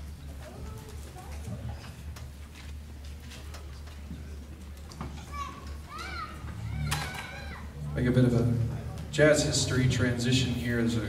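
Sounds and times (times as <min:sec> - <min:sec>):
children chattering: 0:00.0 - 0:02.3, 0:03.1 - 0:11.0
steady low hum: 0:06.3 - 0:11.0.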